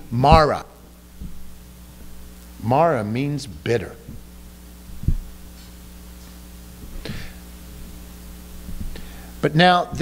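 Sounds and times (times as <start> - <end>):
electrical hum: 0.0 - 10.0
low thump: 1.2 - 2.1, 4.9 - 5.3, 8.6 - 9.0.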